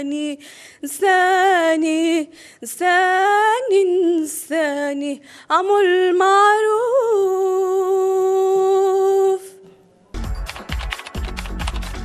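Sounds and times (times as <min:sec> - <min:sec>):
woman singing unaccompanied: 0:00.0 - 0:09.6.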